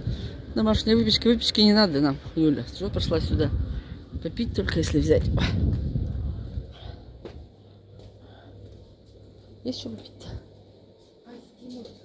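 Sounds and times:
refrigerator low hum: 0:00.0 - 0:12.0.

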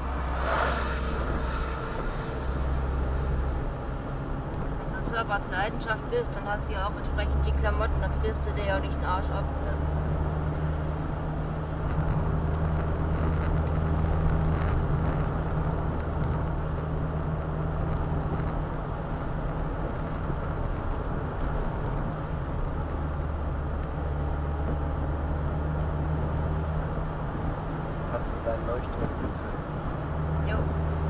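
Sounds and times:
tyre and wind rush: 0:00.0 - 0:04.0
car engine hum: 0:00.0 - 0:31.0.

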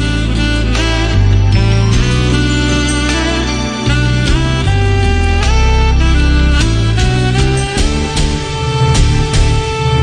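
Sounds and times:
music with sustained melodic notes: 0:00.0 - 0:10.0
steady bass line: 0:00.0 - 0:10.0.

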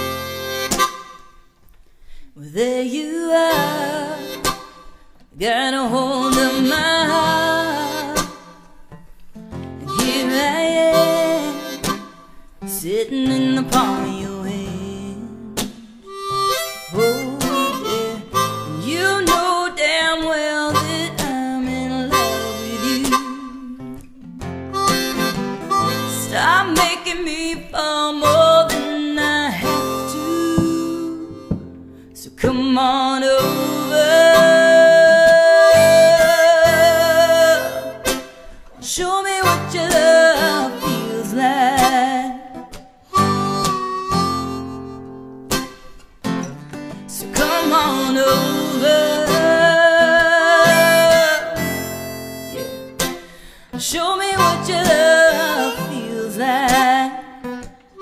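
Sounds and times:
harmonica solo: 0:00.0 - 0:01.4, 0:03.5 - 0:05.0, 0:06.1 - 0:08.5, 0:09.7 - 0:12.4, 0:16.0 - 0:19.5, 0:20.7 - 0:23.9, 0:24.7 - 0:26.9, 0:28.1 - 0:32.0, 0:33.4 - 0:38.6, 0:39.4 - 0:46.6, 0:47.2 - 0:58.0
strummed acoustic guitar: 0:00.0 - 0:01.4, 0:03.3 - 0:58.0.

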